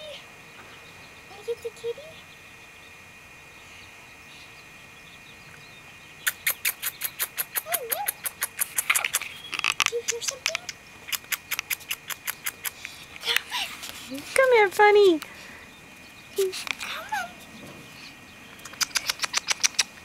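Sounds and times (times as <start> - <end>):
person clicking with mouth: 6.3 - 13.4, 18.6 - 20.0.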